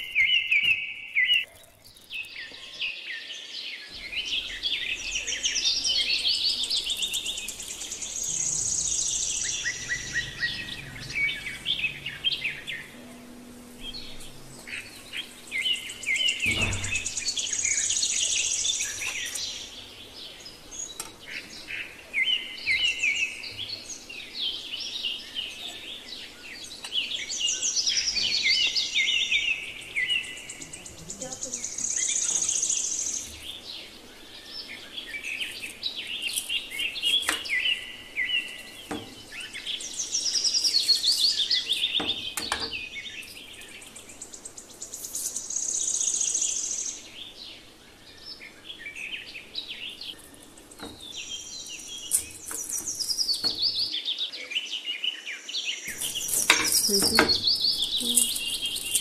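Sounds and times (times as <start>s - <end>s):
small birds chirping and trilling: 0.0s - 59.0s.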